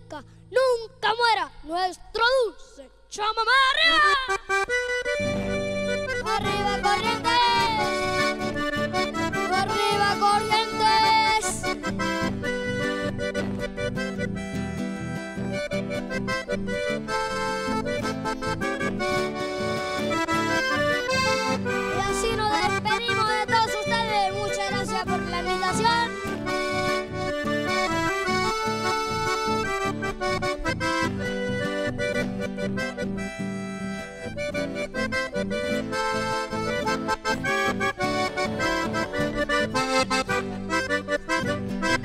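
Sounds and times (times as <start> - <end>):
button accordion: 3.7 - 42.0
classical guitar: 4.5 - 42.0
steady rhythmic bass: 4.7 - 42.0.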